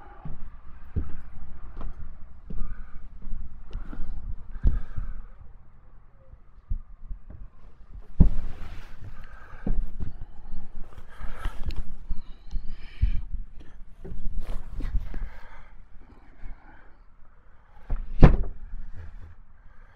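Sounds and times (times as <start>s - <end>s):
steady low rumble: 0.0s - 17.6s
footsteps knocking on floor: 0.2s - 3.9s.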